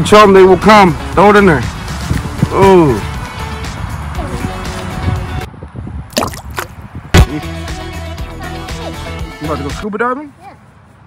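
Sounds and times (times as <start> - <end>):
background music: 0.0 - 5.5, 7.2 - 9.9
water-drop bloop sound effects: 6.1 - 7.3.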